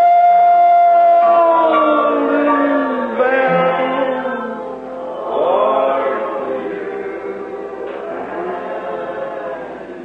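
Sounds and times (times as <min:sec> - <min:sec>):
congregation singing a hymn: 0:01.8 - 0:10.0.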